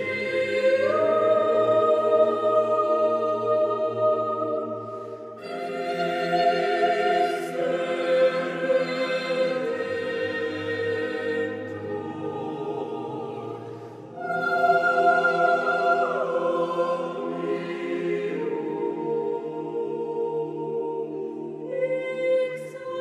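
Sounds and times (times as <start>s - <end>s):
choir singing a cappella: 0.0s - 23.0s.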